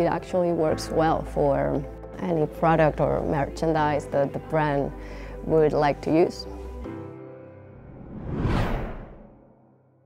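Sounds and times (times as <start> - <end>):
whoosh sound effect: 7.8 - 9.4.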